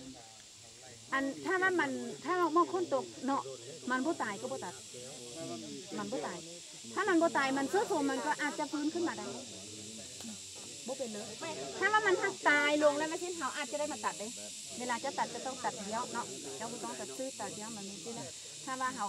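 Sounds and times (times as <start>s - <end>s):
faint steady hiss: 0.0s - 19.0s
woman talking: 1.2s - 4.7s, 6.0s - 6.4s, 7.0s - 9.3s, 11.4s - 19.0s.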